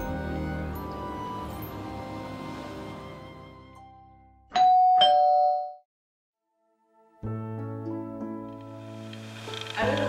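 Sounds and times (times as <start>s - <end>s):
soft background music: 0.0s - 4.4s, 6.5s - 10.0s
electric doorbell chiming: 4.6s - 5.8s.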